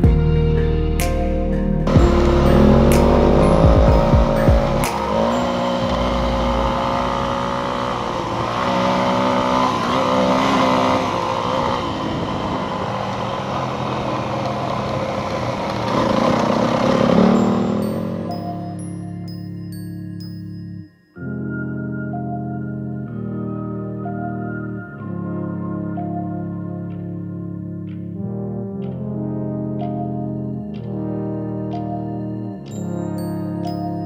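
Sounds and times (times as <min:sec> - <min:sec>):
background music: 0:00.0 - 0:09.6, 0:16.4 - 0:34.0
motorcycle engine revving: 0:01.8 - 0:20.4
wind noise: 0:11.0 - 0:14.3.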